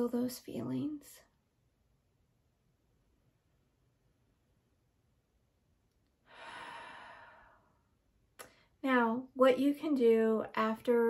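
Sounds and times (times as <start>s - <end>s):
woman breathing deeply: 6.2s - 8.6s.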